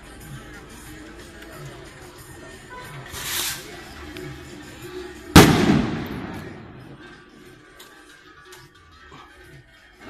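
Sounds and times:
signal rocket bang: 5.4 - 6.7.

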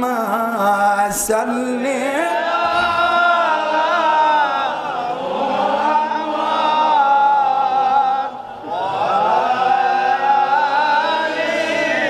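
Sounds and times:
man chanting over loudspeaker: 0.0 - 4.4.

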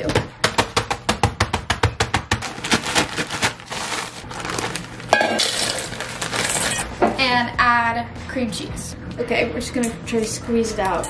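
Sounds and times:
plastic bag crinkling: 2.4 - 6.8
cookies crunching in plastic bag: 2.4 - 6.9.

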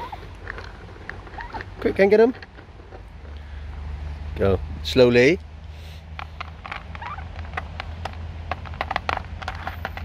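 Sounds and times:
turkeys pecking clay bowl: 0.0 - 4.2, 5.5 - 10.0.

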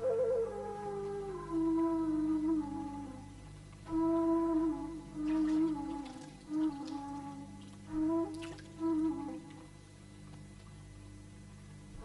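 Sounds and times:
low steady hum: 0.0 - 12.0
person humming a slow melody: 0.0 - 12.0.

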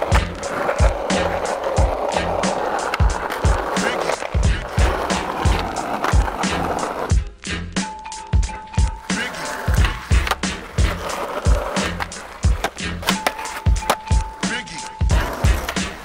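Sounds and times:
skateboard wheels rolling on asphalt: 0.0 - 7.2, 7.9 - 16.0
music with a steady beat: 0.0 - 16.0.

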